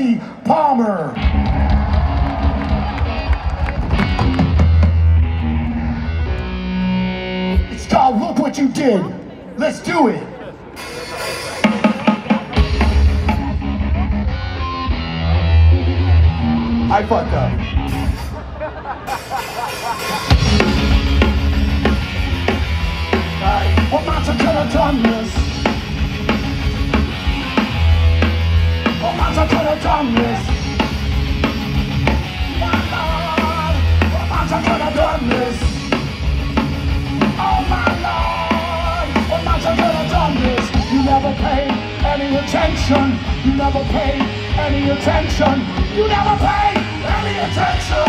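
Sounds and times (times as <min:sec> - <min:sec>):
drums: 0:00.0 - 0:08.9, 0:10.5 - 0:48.0
live rock band: 0:00.0 - 0:48.0
electric guitar: 0:01.2 - 0:08.0, 0:10.6 - 0:48.0
deep bass line: 0:01.2 - 0:08.1, 0:12.6 - 0:18.5, 0:20.3 - 0:48.0.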